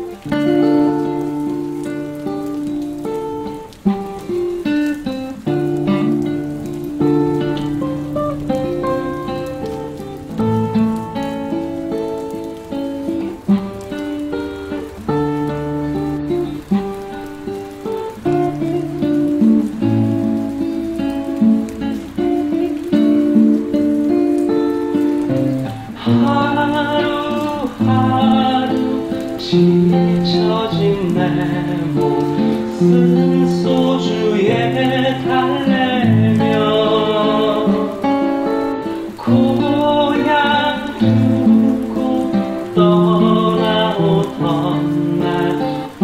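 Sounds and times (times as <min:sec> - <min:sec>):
fingerpicked acoustic guitar: 0:00.0 - 0:46.0.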